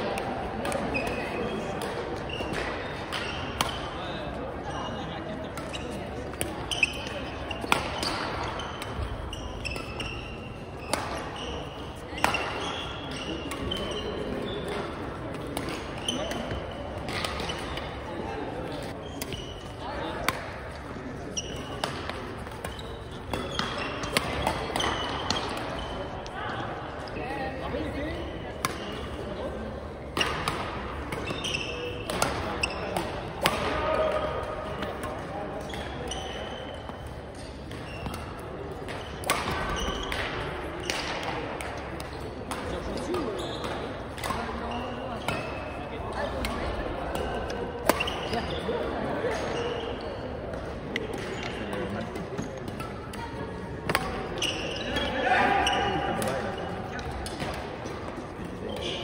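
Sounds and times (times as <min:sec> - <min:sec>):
people talking: 0:00.0 - 0:10.0, 0:10.9 - 0:36.7, 0:38.0 - 0:59.0
rackets hitting shuttlecock: 0:00.1 - 0:04.0, 0:05.5 - 0:26.4, 0:28.1 - 0:49.7, 0:50.4 - 0:59.0.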